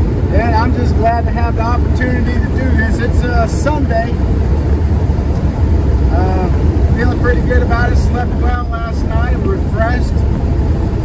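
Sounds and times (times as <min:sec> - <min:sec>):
van engine and tyres droning: 0:00.0 - 0:11.0
man talking: 0:00.3 - 0:04.2, 0:06.0 - 0:10.2.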